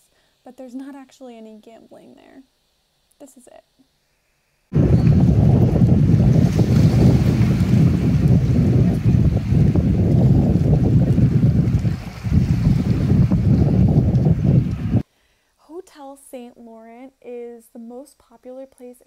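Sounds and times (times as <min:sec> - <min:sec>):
wind buffeting microphone: 0:04.7 - 0:15.0.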